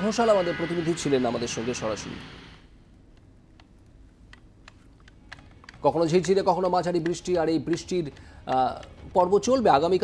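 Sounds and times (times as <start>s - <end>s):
sharp clicks: 3.1s - 9.0s.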